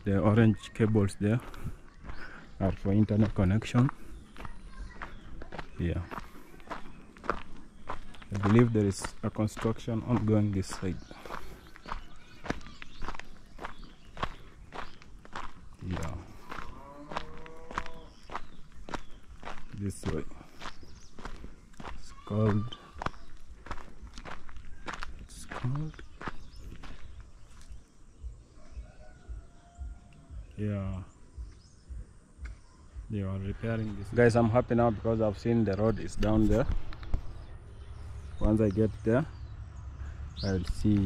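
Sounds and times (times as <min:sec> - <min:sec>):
footsteps on stony dirt road: 0:00.0 - 0:41.0.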